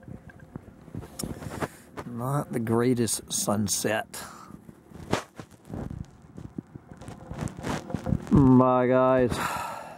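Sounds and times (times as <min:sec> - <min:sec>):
wind buffeting microphone: 0:04.6 - 0:08.6.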